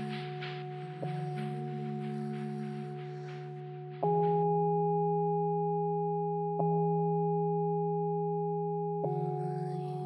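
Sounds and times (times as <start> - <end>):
sustained pure ringing tones: 0.0 - 10.0.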